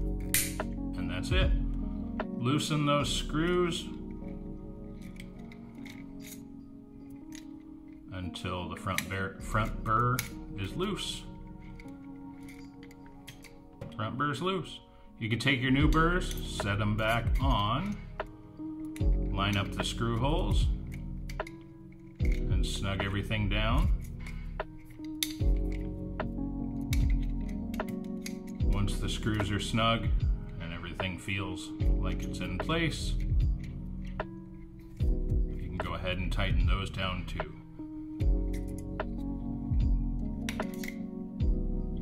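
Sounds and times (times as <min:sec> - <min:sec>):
music with held tones: 0:00.0 - 0:42.0
wrench clicking on metal: 0:20.8 - 0:22.4, 0:24.0 - 0:26.0, 0:26.8 - 0:28.6, 0:40.4 - 0:41.1.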